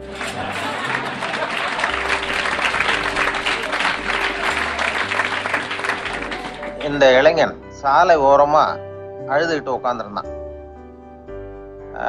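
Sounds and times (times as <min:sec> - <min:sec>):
audience applause: 0:00.0 - 0:07.2
soft background music: 0:00.0 - 0:12.0.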